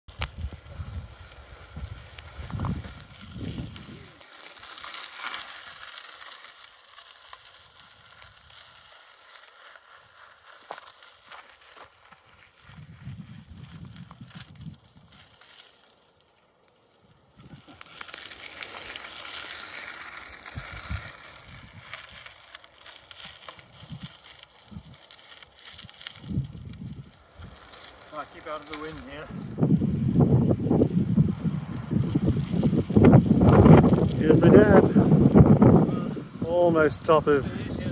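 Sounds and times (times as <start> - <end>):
wind gusting on microphone: 0.1 - 4.2, 12.6 - 15.3, 17.3 - 17.8, 20.2 - 22.3, 23.6 - 25.1, 25.7 - 27.8, 28.4 - 37.9
bike tyres rolling on dirt: 0.1 - 37.9
bike clicks and rattles: 17.4 - 29.2.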